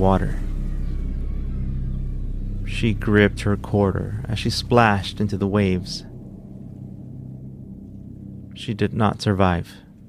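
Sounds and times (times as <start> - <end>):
low ambient drone: 0.0 - 10.0.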